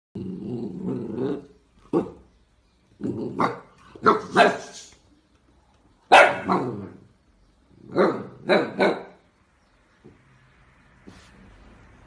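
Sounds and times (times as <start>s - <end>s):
puppy growling: 0.2s - 2.3s, 3.0s - 4.4s, 6.4s - 7.1s
puppy barking: 3.4s - 4.8s, 6.1s - 6.8s, 7.9s - 9.2s.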